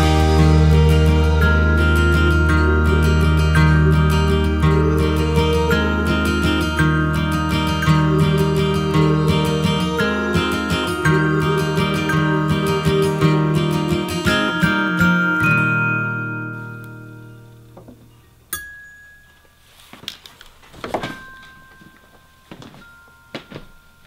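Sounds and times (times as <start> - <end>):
strummed acoustic guitar chords: 0.0 - 18.2
glockenspiel notes: 0.0 - 19.8, 21.0 - 24.0.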